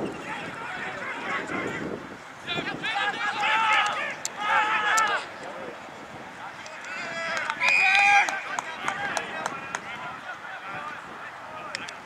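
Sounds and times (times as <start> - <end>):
players and spectators shouting: 0.0 - 11.8.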